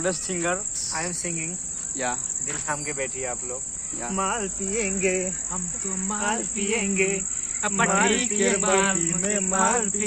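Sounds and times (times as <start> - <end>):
crickets chirring: 0.0 - 10.0
men talking: 0.0 - 10.0.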